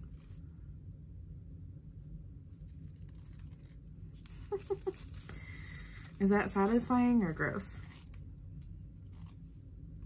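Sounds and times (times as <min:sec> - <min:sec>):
low steady hum: 0:00.0 - 0:10.0
paper rustling against skin: 0:02.5 - 0:08.3, 0:09.0 - 0:09.4.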